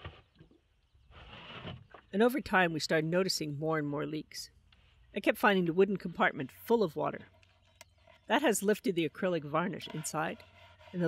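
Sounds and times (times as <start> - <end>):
plastic jug scraping against wood: 0.0 - 2.1, 9.7 - 11.0.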